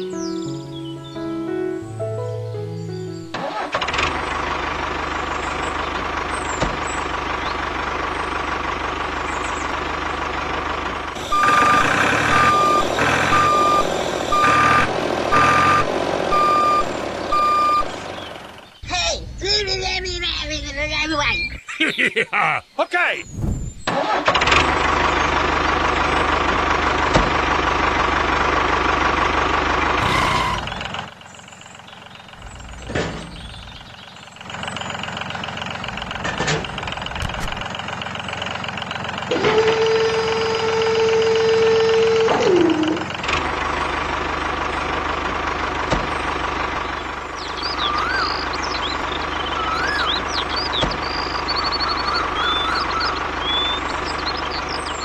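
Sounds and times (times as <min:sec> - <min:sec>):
engine humming: 0:00.0 - 0:55.0.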